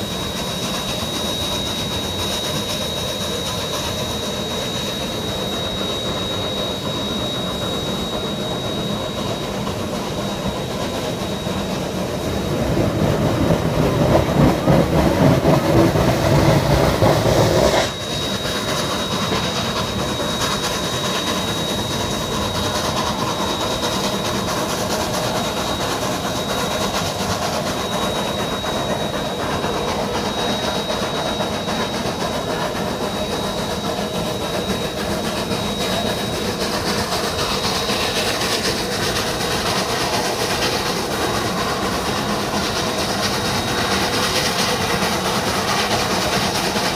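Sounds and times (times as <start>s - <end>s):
rolling clatter of train: 0.0s - 46.9s
steam locomotive steam: 0.0s - 46.9s
thin high whine: 0.0s - 46.9s.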